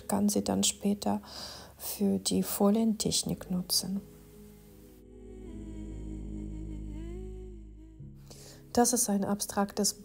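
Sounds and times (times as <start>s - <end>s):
soft background music: 0.0s - 10.0s
slow gliding melody: 3.2s - 10.0s
low drone: 4.2s - 8.8s.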